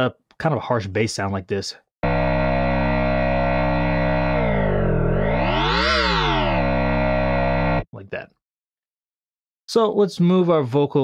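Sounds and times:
buzzy synth bass growl: 2.0 - 7.8.

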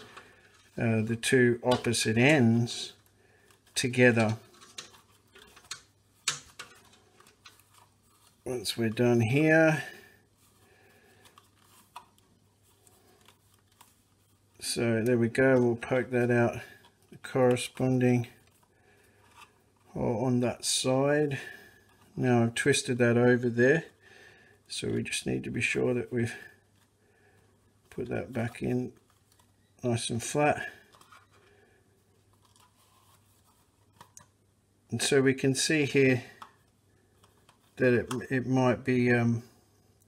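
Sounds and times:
wire and plastic spool handling: 0.0 - 20.1, 26.3 - 34.4, 35.0 - 38.9.

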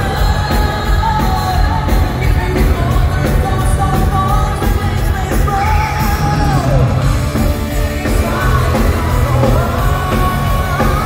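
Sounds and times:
live metal band playing: 0.0 - 11.0
loud drums: 0.0 - 11.0.

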